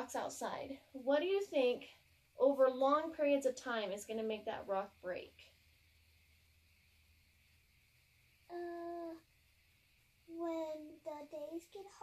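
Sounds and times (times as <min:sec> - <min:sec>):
faint room tone: 0:00.0 - 0:12.0
child humming: 0:08.5 - 0:09.2.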